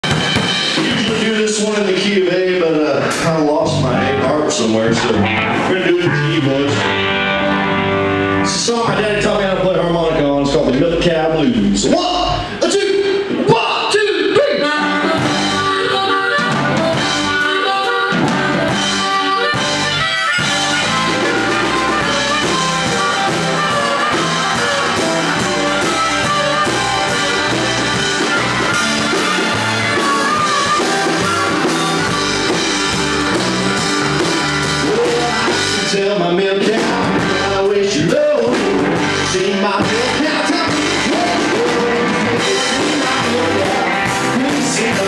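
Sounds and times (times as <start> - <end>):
blues-rock band playing: 0.0 - 45.0
harmonica: 14.1 - 45.0.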